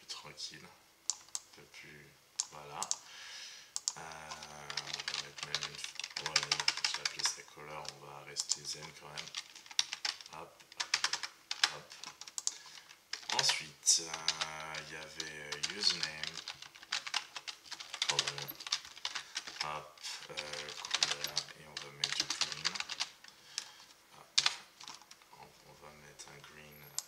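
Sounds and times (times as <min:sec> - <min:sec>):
computer keyboard typing: 0:01.1 - 0:01.5, 0:02.4 - 0:03.0, 0:03.8 - 0:25.2.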